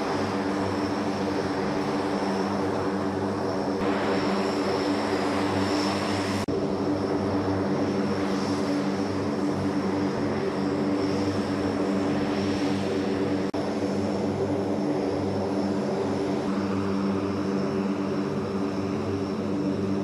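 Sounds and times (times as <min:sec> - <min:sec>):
turboprop engines droning: 0:00.0 - 0:20.0.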